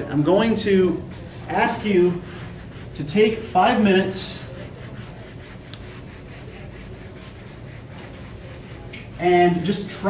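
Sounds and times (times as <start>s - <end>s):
eraser rubbing on whiteboard: 1.1s - 10.0s.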